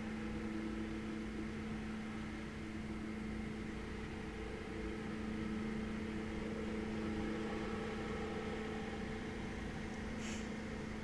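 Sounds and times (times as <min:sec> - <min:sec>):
low hum with fixed tones: 0:00.0 - 0:11.0.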